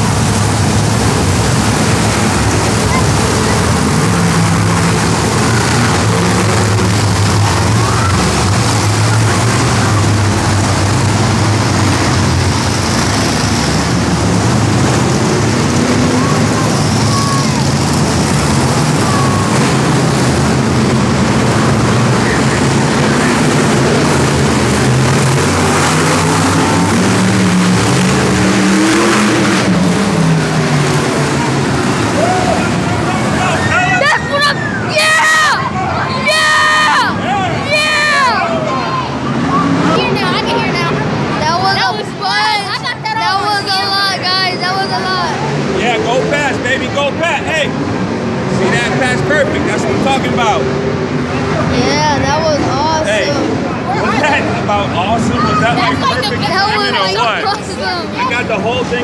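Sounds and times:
big engines revving: 0:00.0 - 0:59.0
crowd voices in a stadium: 0:00.0 - 0:59.0.

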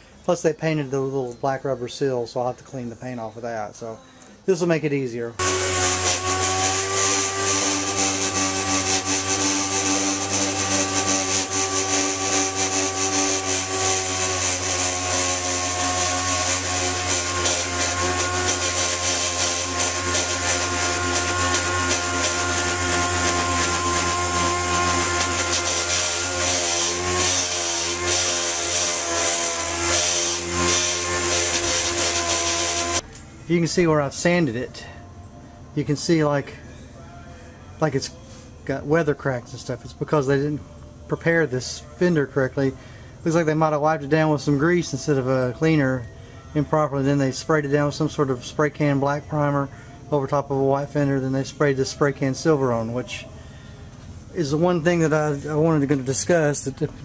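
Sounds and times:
orbital sander sanding metal: 0:05.4 - 0:33.0.

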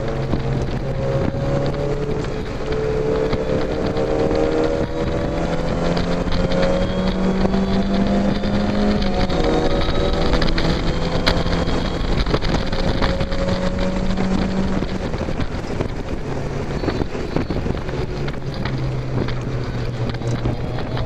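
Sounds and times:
car engine accelerating hard: 0:00.0 - 0:21.0.

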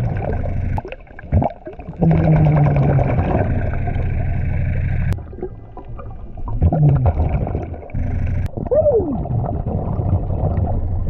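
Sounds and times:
diver exhaling bubbles: 0:00.0 - 0:11.0.

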